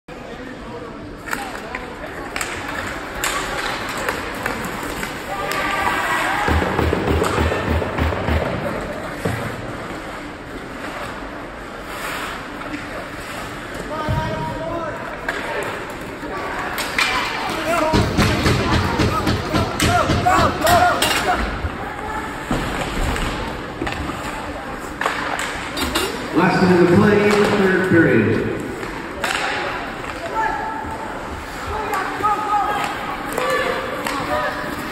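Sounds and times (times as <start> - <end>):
hockey sticks and puck clacking: 1.2 - 14.3, 15.0 - 34.9.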